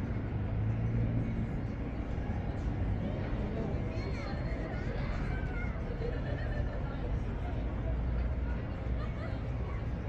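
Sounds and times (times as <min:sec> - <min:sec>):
faint distant voices: 0:00.0 - 0:10.0
low traffic rumble: 0:00.0 - 0:10.0.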